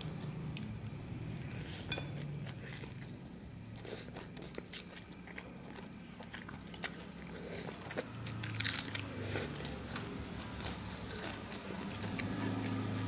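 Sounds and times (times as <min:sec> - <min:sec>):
chewing and slurping food: 0:00.0 - 0:13.0.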